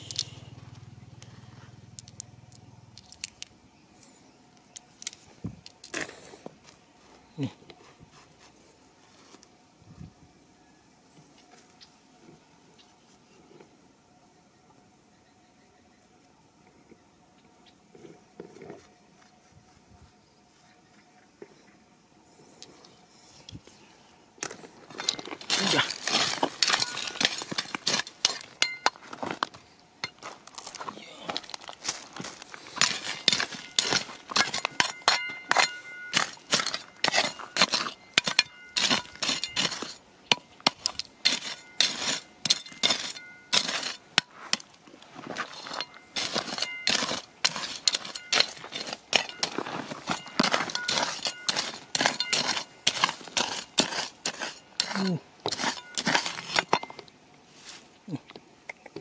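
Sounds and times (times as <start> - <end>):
shovel scraping through stones: 24.4 - 57.9.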